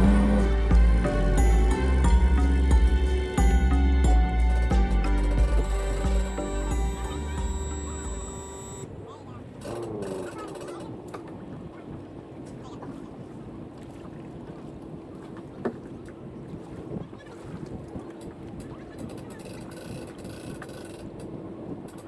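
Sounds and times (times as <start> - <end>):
boat engine idling: 0.0 - 22.0
faint indistinct voices: 5.6 - 13.3, 16.8 - 21.1.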